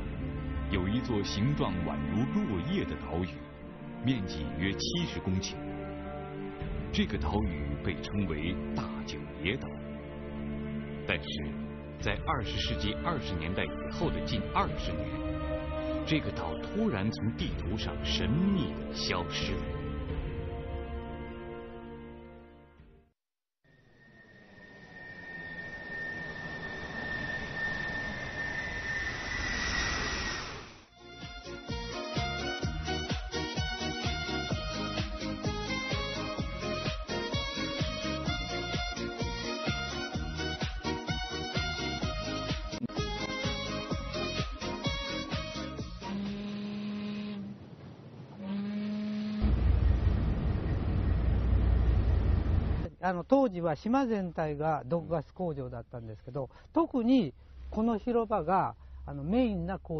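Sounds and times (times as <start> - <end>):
rushing jet-like noise with whine: 24.0 - 30.9
rhythmic music with sharp beats: 31.0 - 46.3
horn blasts: 41.6 - 47.6, 48.4 - 49.8
loud low rumble: 49.4 - 52.9.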